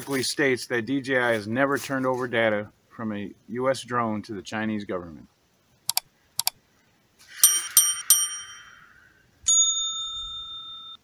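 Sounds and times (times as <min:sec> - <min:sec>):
quick chime pings: 0:07.4 - 0:08.8, 0:09.5 - 0:11.0
ringing ding: 0:07.4 - 0:08.9, 0:09.5 - 0:11.0.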